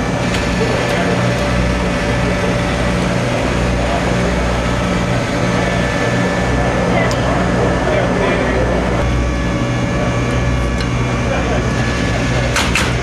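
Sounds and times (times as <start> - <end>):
engine idling: 0.0 - 13.0.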